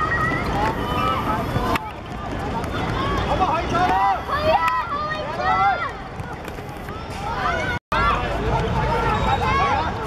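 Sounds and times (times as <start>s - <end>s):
children shouting: 0.0s - 10.0s.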